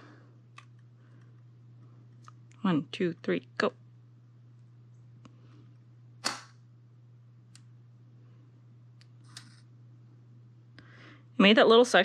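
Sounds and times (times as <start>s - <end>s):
autoinjector spring click: 6.2s - 6.6s.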